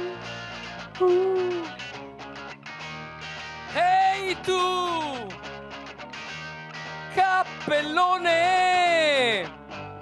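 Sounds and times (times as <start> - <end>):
person singing long notes: 0.0 - 0.2, 1.0 - 1.8
live rock band with electric guitar: 0.0 - 10.0.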